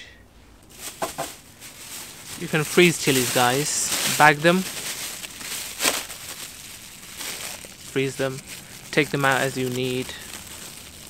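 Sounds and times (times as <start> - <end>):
plastic bag crinkling: 0.5 - 11.0.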